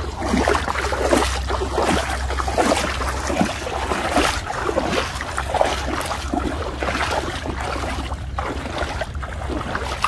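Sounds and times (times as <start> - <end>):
wading through shallow water: 0.0 - 10.0.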